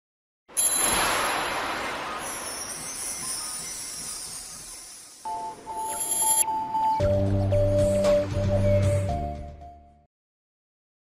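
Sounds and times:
high shimmering sound: 0:00.6 - 0:06.4.

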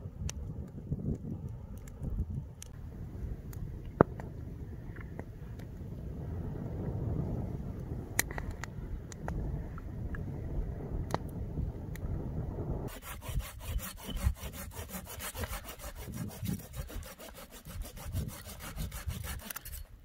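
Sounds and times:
campfire crackling: 0:00.0 - 0:13.0
low rumble: 0:02.3 - 0:13.0
fire pops: 0:03.4 - 0:06.0, 0:06.7 - 0:10.3, 0:11.0 - 0:12.8
knife shaving wooden stick: 0:12.9 - 0:20.0.

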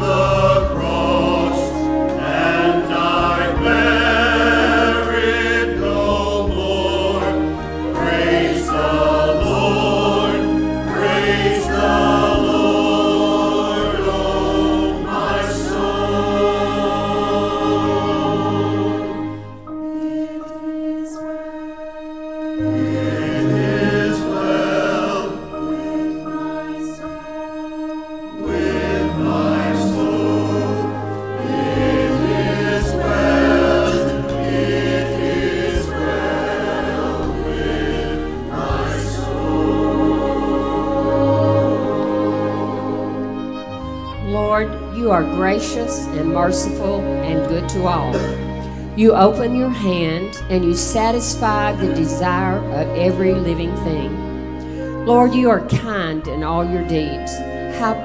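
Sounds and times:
church choir singing: 0:00.0 - 0:58.0
instrumental accompaniment: 0:00.0 - 0:58.0.

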